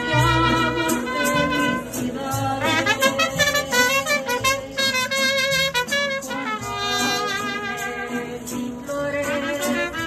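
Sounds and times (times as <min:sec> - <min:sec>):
mariachi band playing: 0:00.0 - 0:10.0.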